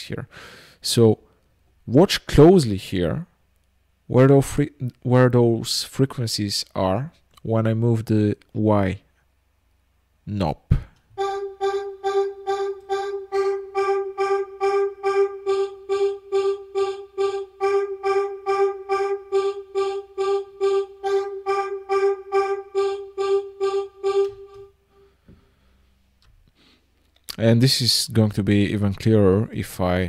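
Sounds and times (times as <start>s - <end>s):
pulsing vocal-like synthesizer note: 11.2s - 24.7s.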